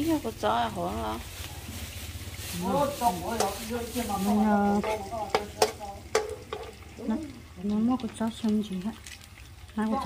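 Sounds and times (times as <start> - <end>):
paste sizzling: 0.0 - 10.0
metal spoon scraping wok: 1.8 - 6.8
spoon tapping pan: 3.3 - 3.6, 4.7 - 6.9.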